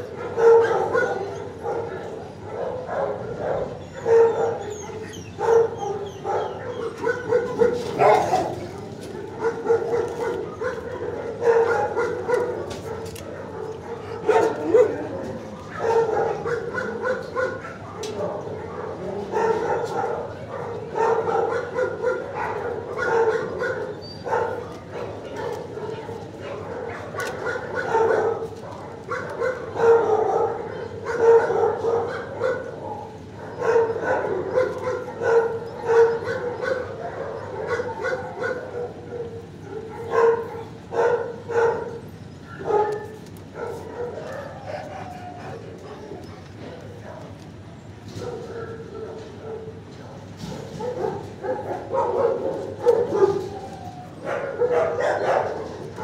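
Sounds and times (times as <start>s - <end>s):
dogs barking: 0.0s - 56.0s.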